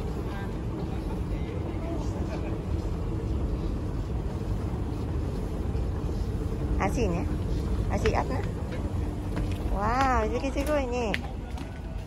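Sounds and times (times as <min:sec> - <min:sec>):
moving walkway rumbling: 0:00.0 - 0:12.0.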